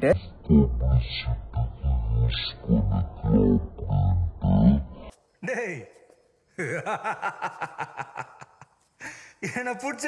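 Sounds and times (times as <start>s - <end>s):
man repeating gruff syllable: 0.0s - 5.8s.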